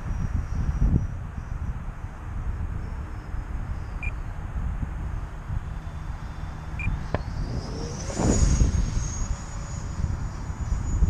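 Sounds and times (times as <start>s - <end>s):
electric ducted fan whine: 0.0s - 11.0s
wind rumbling on microphone: 0.0s - 11.0s.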